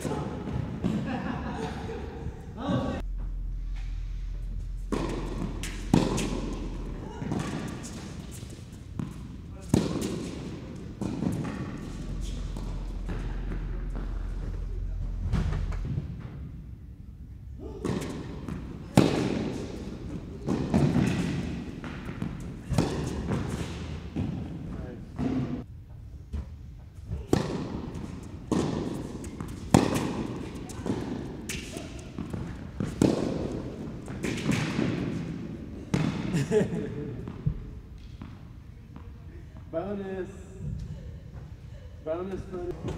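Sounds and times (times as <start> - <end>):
racquet hitting tennis ball: 4.8 - 14.6, 17.6 - 25.6, 27.2 - 36.4
ball bouncing on court: 4.9 - 14.6, 17.8 - 24.6, 27.2 - 36.4.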